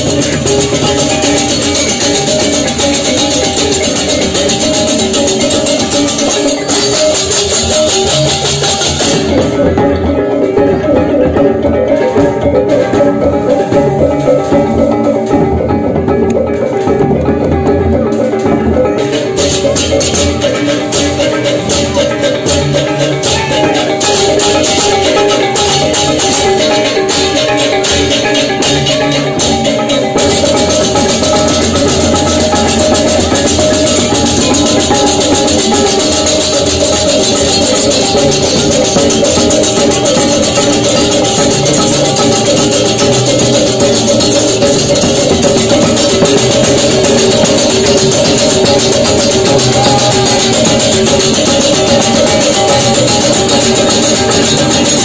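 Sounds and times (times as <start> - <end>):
clashing hand cymbals: 0.0 - 11.4, 18.1 - 55.0
ringing bronze gongs: 0.0 - 15.6, 16.8 - 55.0
gamelan playing: 0.0 - 55.0.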